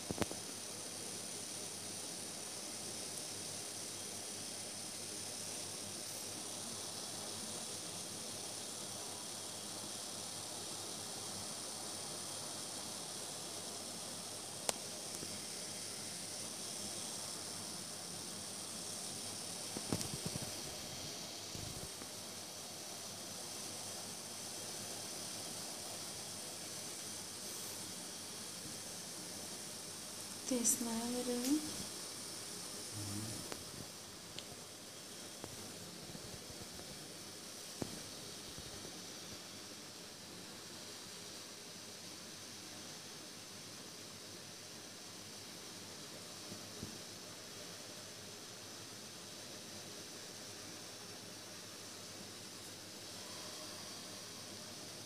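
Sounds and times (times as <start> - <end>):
room noise hiss: 0.0 - 55.0.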